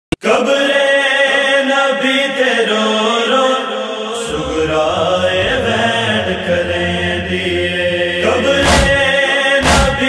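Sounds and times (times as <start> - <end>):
voices chanting a drone: 0.2 - 10.0.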